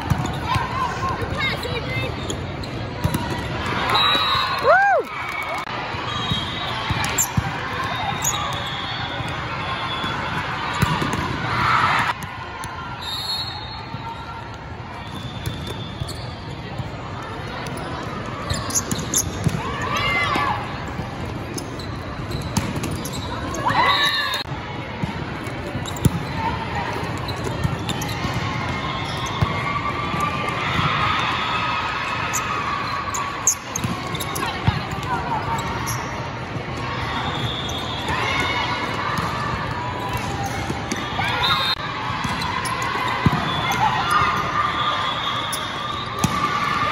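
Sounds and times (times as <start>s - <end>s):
volleyball slaps: 10.8s - 12.7s.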